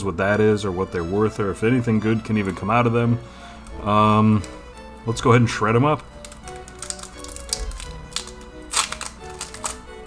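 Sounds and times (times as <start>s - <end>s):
quiet background music: 0.0s - 10.0s
foil wrapper tearing and crackling: 6.2s - 10.0s.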